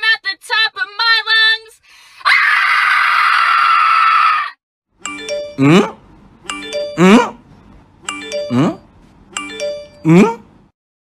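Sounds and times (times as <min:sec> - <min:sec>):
person screaming: 0:02.2 - 0:04.6
chiming music loop: 0:05.0 - 0:07.3, 0:08.1 - 0:10.3
person singing: 0:08.5 - 0:08.8.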